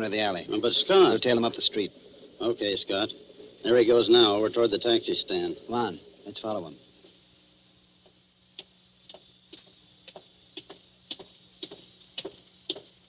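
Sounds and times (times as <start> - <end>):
low steady hum: 0.0 - 13.0
footsteps walking: 8.0 - 12.9.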